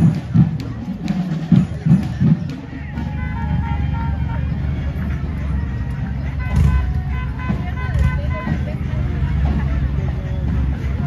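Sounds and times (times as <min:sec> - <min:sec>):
crowd chatter: 0:00.0 - 0:11.0
faint music: 0:00.0 - 0:11.0
vehicle engine rumbling: 0:00.0 - 0:11.0.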